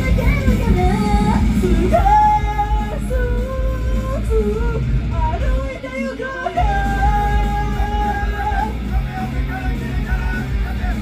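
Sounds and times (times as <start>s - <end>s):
loud backing music: 0.0s - 11.0s
woman singing into a microphone: 0.0s - 11.0s.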